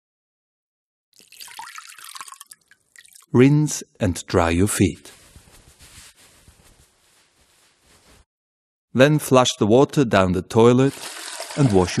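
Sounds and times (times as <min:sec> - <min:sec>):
water pouring into a basin: 0:01.2 - 0:03.3, 0:10.8 - 0:12.0
water dripping: 0:01.2 - 0:03.4.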